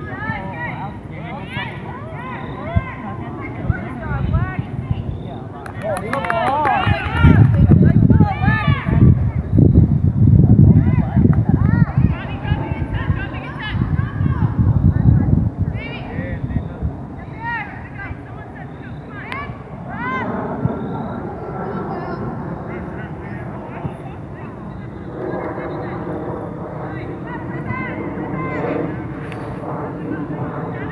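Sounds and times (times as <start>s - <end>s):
people shouting calls: 0.0s - 4.7s, 17.2s - 22.2s
distant shouts and calls: 0.0s - 9.6s, 10.6s - 30.9s
wind buffeting microphone: 0.0s - 30.9s
steady low rumble: 6.9s - 18.2s, 19.5s - 30.9s.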